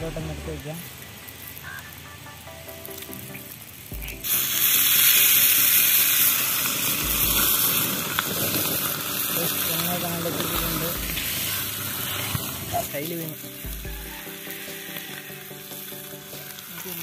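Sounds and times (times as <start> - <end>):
fish sizzling in hot oil: 0.6 - 2.0, 2.6 - 17.0.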